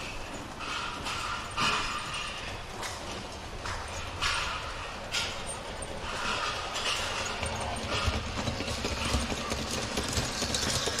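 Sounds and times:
wheels clicking over rail joints: 0.0s - 11.0s
model train rumble: 7.3s - 11.0s.

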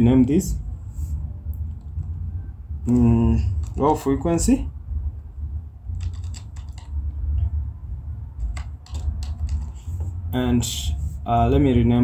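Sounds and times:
steady low hum: 0.0s - 12.0s
computer keyboard typing: 1.6s - 2.2s, 2.8s - 4.2s, 5.9s - 7.2s, 8.4s - 10.0s.

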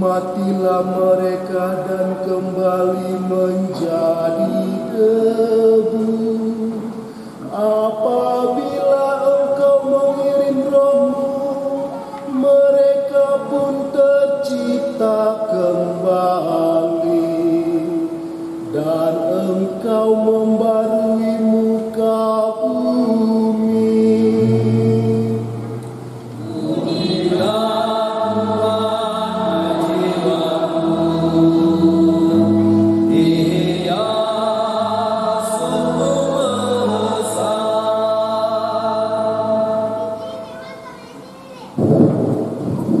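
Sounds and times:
keyboard playing held chords: 22.4s - 40.6s.

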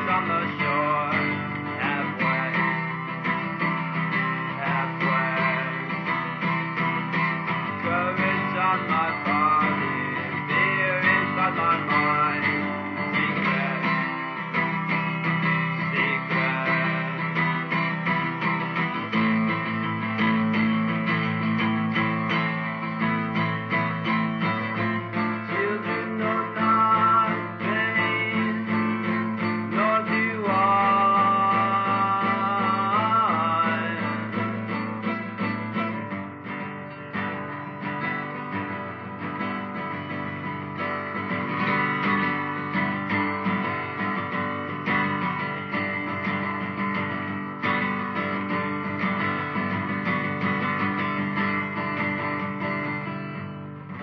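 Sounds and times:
folk guitar plucked and strummed: 0.0s - 54.0s.

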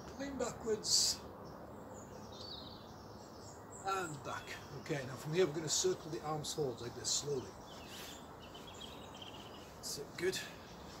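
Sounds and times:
outdoor background hush: 0.0s - 11.0s
faint bird chirps: 7.2s - 11.0s.

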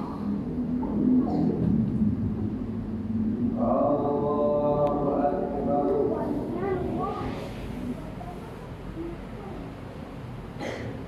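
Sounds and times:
steady low rumble: 0.0s - 10.6s.

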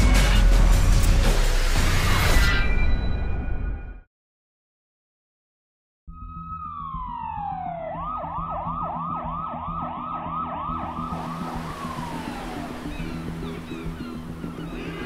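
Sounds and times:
police siren wailing and yelping: 6.2s - 15.0s
low steady drone: 10.8s - 15.0s
street noise hiss: 10.9s - 15.0s.

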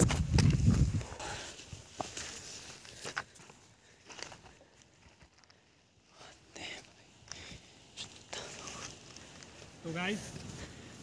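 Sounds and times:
footsteps on stony dirt: 0.0s - 11.0s.

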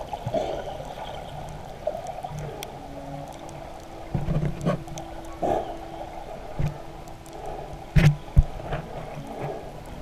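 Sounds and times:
faint steady hum: 0.0s - 10.0s
water sloshing underwater: 0.0s - 10.0s.

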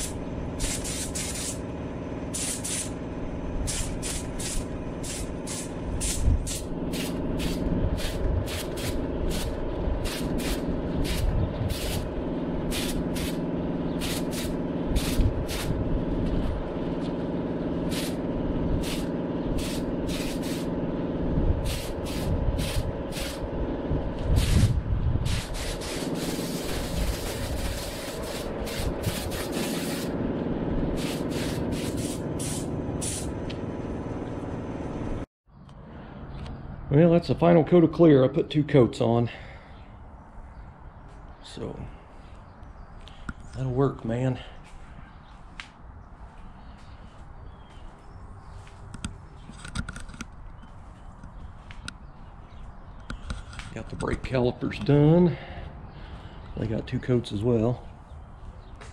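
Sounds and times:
spray gun hissing: 0.0s - 1.6s, 2.3s - 3.0s, 3.6s - 15.8s, 17.8s - 18.2s, 18.8s - 20.8s, 21.6s - 23.4s, 24.3s - 30.2s, 30.9s - 33.4s
motor hum: 0.0s - 36.6s.

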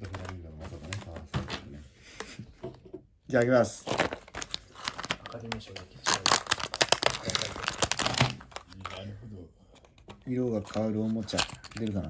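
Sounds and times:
foil wrapper tearing and crinkling: 3.8s - 9.0s.

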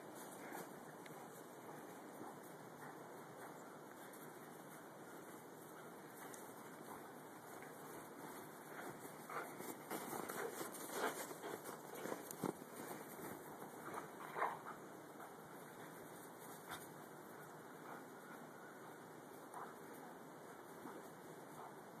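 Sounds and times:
dogs scuffling in snow: 3.4s - 18.3s.

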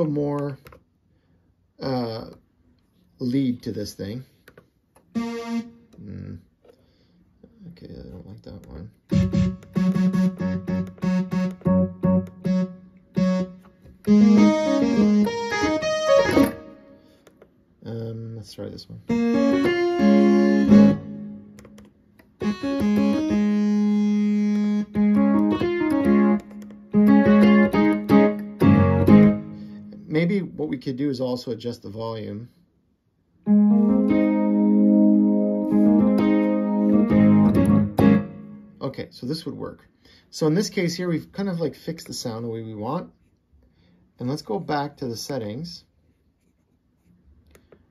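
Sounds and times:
synth keyboard lead notes: 5.1s - 6.2s, 9.1s - 17.0s, 19.1s - 30.1s, 33.4s - 38.8s.

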